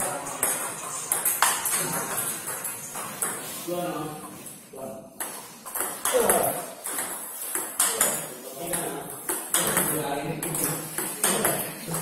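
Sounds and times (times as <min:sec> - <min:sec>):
table tennis balls clicking: 0:00.3 - 0:03.6, 0:05.2 - 0:12.0.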